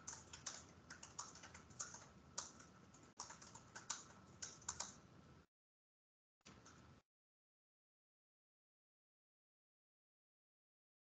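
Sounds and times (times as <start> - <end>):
typing on computer keyboard: 0.0 - 5.0.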